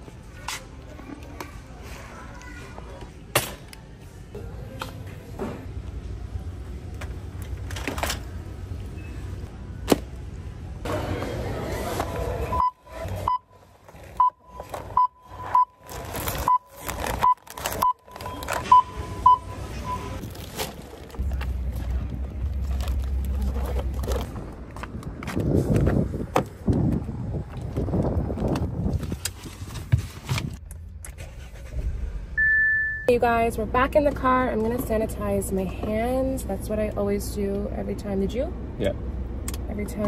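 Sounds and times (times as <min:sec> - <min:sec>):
barcode scanner beeping: 0:14.2 - 0:20.2
low rumble: 0:20.2 - 0:29.2.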